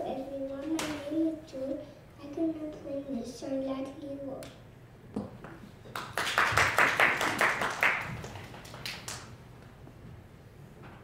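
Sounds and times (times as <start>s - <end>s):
audience clapping: 5.9s - 9.4s.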